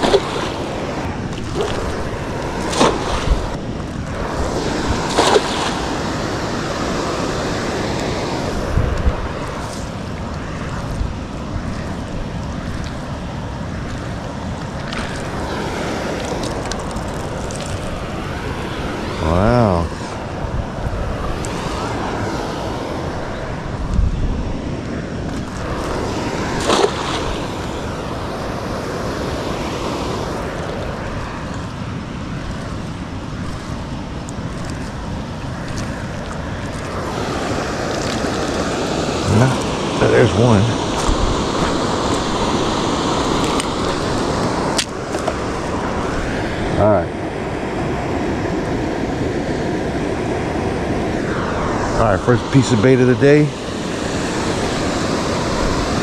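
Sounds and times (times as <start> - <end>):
waterfall rushing: 0.0 - 12.3, 13.0 - 20.2, 25.4 - 56.0
cast net knocks and splashes: 2.6 - 3.3.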